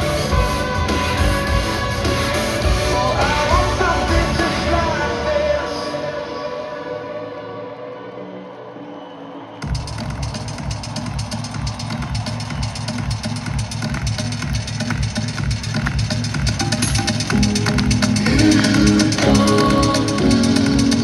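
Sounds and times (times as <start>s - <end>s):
fast electronic drum beat: 9.6s - 21.0s.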